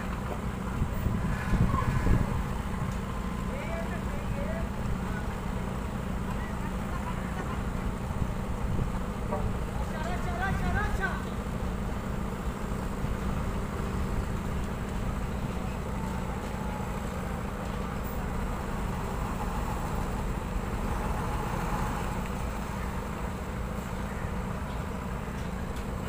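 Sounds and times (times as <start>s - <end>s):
truck diesel engine rumbling: 0.0s - 26.0s.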